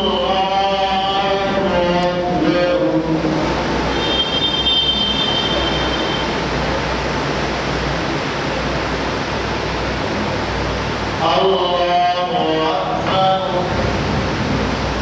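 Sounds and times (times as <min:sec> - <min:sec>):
congregation rushing noise: 0:00.0 - 0:15.0.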